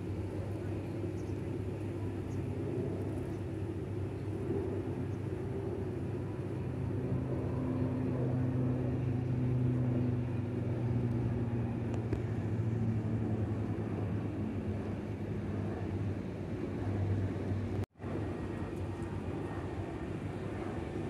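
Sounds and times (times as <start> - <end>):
turboprop airliner propeller drone: 0.0 - 21.0.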